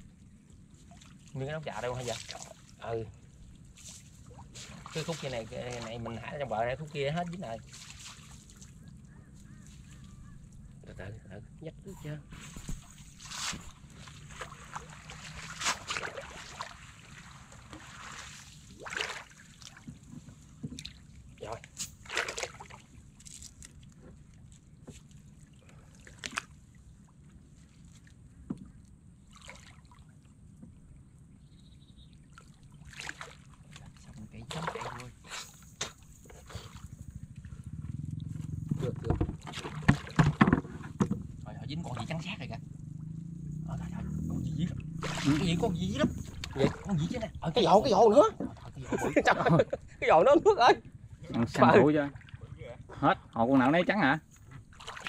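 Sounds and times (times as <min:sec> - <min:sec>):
water splashing and dripping: 0:00.8 - 0:02.9, 0:03.6 - 0:09.0, 0:12.5 - 0:26.7, 0:29.2 - 0:30.7, 0:32.2 - 0:35.2, 0:38.9 - 0:42.6, 0:43.5 - 0:48.8, 0:54.4 - 0:55.0
knocks on wooden canoe: 0:38.7 - 0:41.3.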